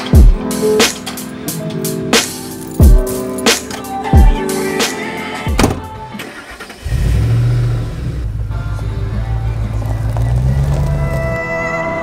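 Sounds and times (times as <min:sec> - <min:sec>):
background music: 0:00.0 - 0:12.0
truck door shutting: 0:05.5 - 0:07.3.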